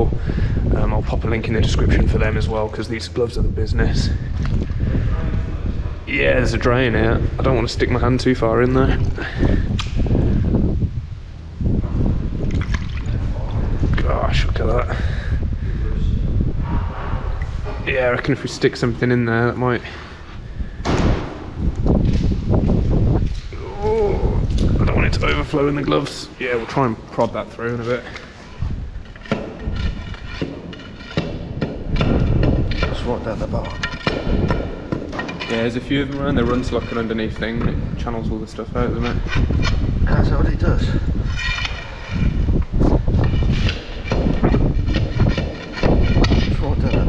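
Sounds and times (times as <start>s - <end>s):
steady low rumble: 0.0s - 47.0s
water splashing: 12.4s - 13.4s
wet squelching and sloshing: 12.4s - 13.4s
stick knocking in drain: 29.2s - 37.7s.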